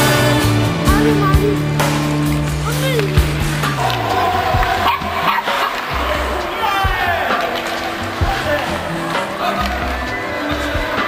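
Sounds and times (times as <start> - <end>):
music: 0.0 - 11.0
voices: 0.0 - 11.0.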